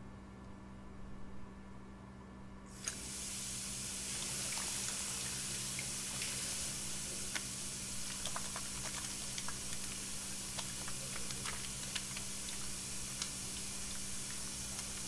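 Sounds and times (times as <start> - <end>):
tap turned on: 2.8 - 3.0
water running into sink: 2.8 - 15.0
hands washing under water: 3.9 - 15.0.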